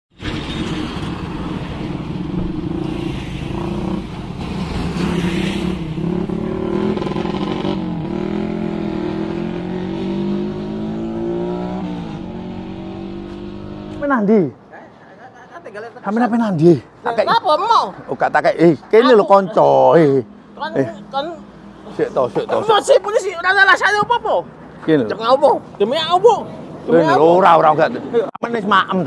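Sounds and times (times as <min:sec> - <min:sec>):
vehicle engines passing on road: 0:00.2 - 0:29.0.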